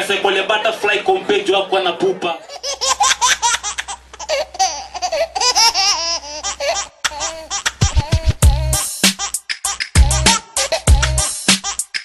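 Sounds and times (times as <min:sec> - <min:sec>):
hip hop beat bass drum hits: 0:07.8 - 0:09.2, 0:09.9 - 0:11.7.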